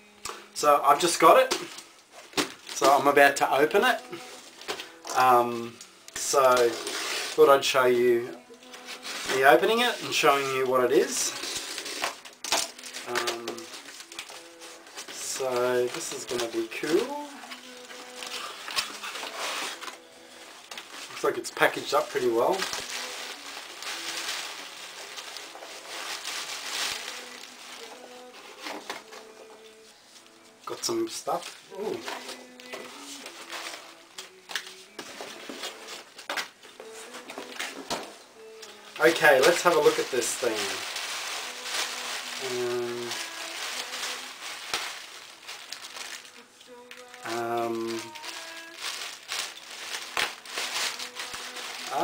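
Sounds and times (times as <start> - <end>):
bubble wrap rustling and crinkling: 0.0 - 52.0.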